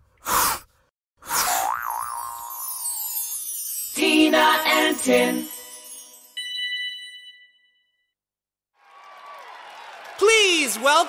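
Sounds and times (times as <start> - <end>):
wobbling boing tone: 1.6 - 2.6
shimmering sparkle: 2.4 - 7.6.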